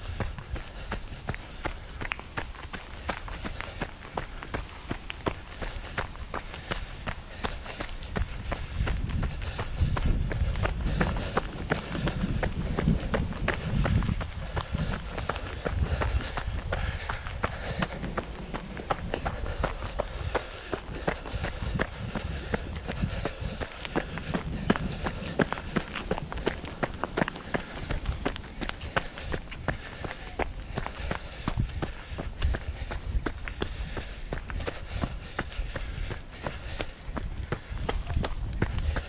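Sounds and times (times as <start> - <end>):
running footsteps on leafy dirt: 0.0 - 39.0.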